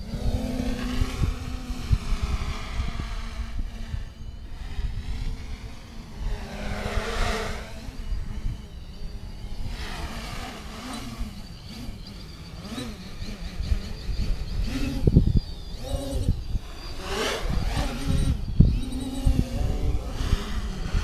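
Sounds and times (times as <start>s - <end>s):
quadcopter propellers buzzing: 0.0s - 21.0s
wind rumble on microphone: 0.0s - 21.0s.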